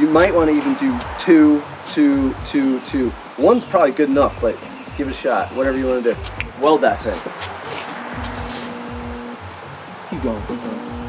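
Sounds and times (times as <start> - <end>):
steady noisy hiss: 0.0 - 11.0
spot welder buzzing: 8.1 - 9.5, 10.3 - 11.0.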